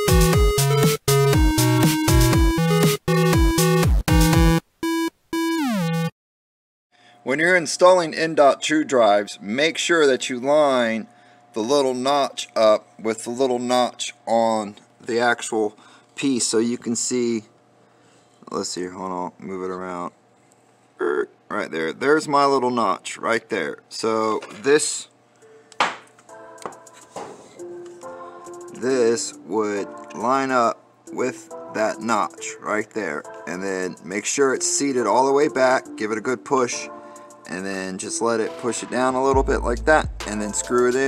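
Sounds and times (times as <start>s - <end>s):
tone sliding down in pitch: 0.0s - 6.1s
soft background music: 24.1s - 41.0s.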